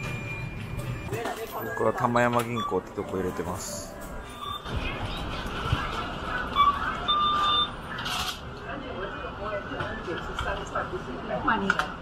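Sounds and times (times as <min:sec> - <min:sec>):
electronic till beeps: 0:00.0 - 0:08.1
shop background music: 0:00.0 - 0:08.2.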